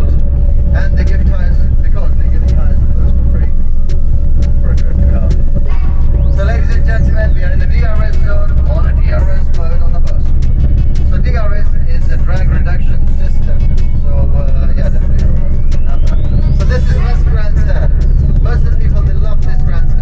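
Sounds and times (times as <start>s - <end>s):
bus engine and road rumble: 0.0s - 20.0s
voices talking: 0.0s - 20.0s.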